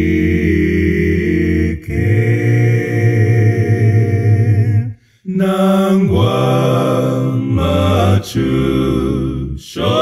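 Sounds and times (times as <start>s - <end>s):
male voices singing a hymn: 0.0s - 10.0s.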